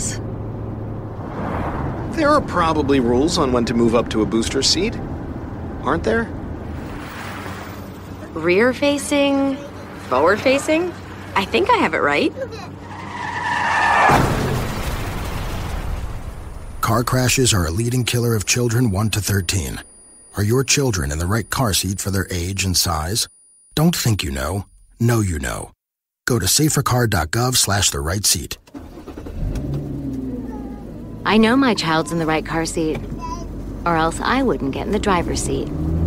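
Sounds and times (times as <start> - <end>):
car engine low rumble: 0.0 - 13.6, 16.0 - 25.6, 26.4 - 36.0
car tyres screeching: 9.6 - 14.5.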